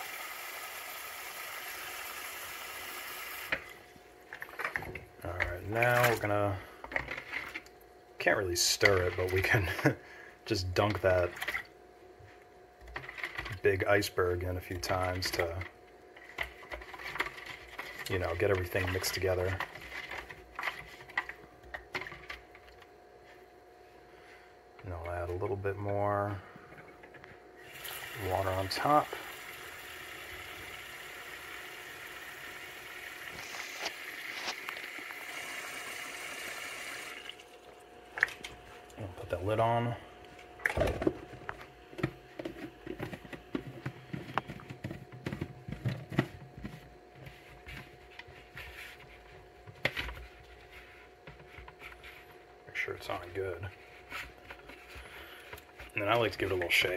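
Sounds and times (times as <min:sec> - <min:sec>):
faint steady hum: 0:00.0 - 0:56.9.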